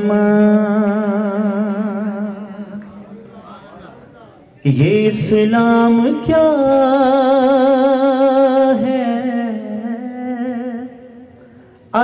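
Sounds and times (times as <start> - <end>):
man singing long devotional note: 0.0 - 3.2, 4.6 - 12.0.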